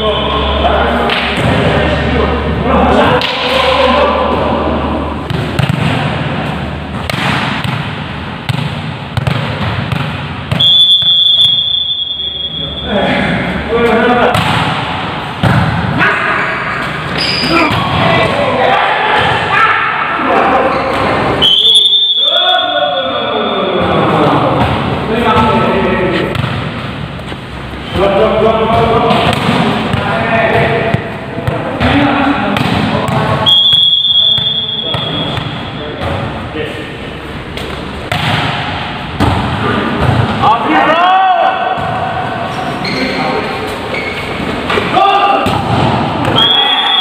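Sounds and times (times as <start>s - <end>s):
players' voices: 0.0s - 9.1s, 10.6s - 47.0s
sports hall noise: 0.0s - 47.0s
volleyballs struck and landing: 1.0s - 2.0s, 2.9s - 11.6s, 13.8s - 16.0s, 23.8s - 27.5s, 28.6s - 36.9s, 37.5s - 40.5s, 41.5s - 42.5s, 43.7s - 46.4s
whistle blown: 10.6s - 12.9s, 21.4s - 23.2s, 33.4s - 35.8s, 46.3s - 47.0s.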